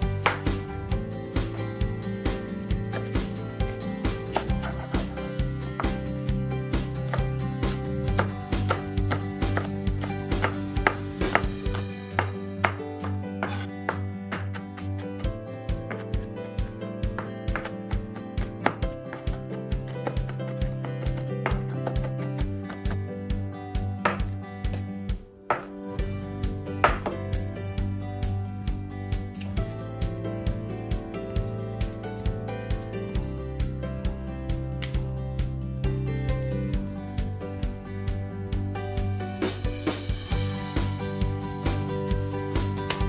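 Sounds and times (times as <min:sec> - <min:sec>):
background music: 0:00.0 - 0:43.0
knife chopping on cutting board: 0:04.3 - 0:06.1, 0:07.1 - 0:14.7, 0:17.1 - 0:23.0, 0:26.8 - 0:27.2
knife cutting onto cutting mat: 0:13.4 - 0:14.6.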